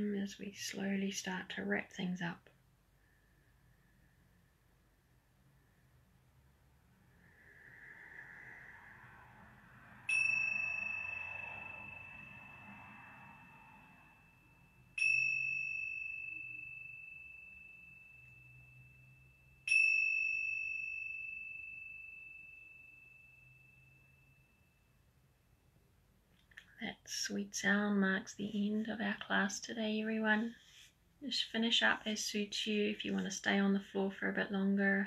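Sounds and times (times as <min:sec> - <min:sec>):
small cymbals ringing: 0:07.2 - 0:25.2.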